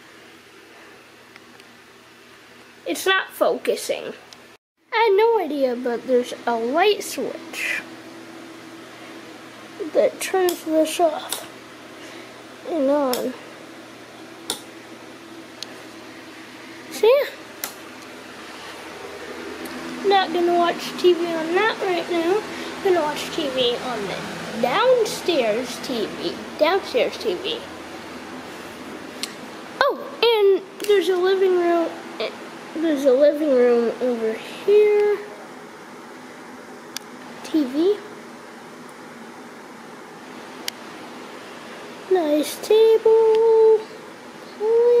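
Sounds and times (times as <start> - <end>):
room noise hiss: 0.0 - 45.0.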